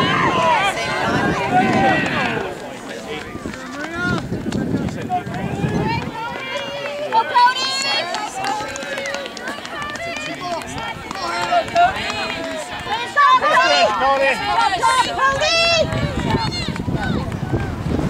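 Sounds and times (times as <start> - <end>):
spectators shouting and cheering: 0.0 - 18.0.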